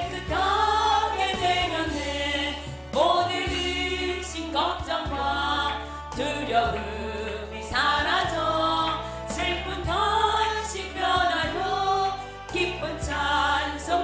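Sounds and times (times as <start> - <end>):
group singing a hymn: 0.0 - 14.0
low instrumental accompaniment: 0.0 - 14.0.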